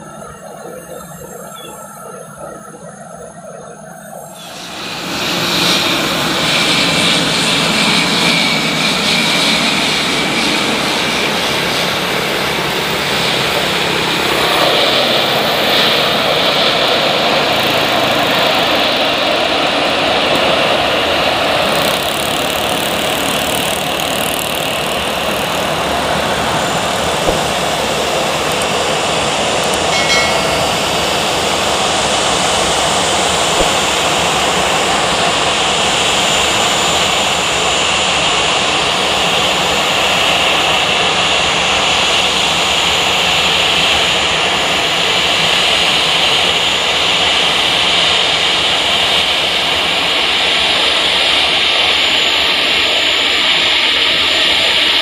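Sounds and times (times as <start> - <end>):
jet engines running: 0.0 - 55.0.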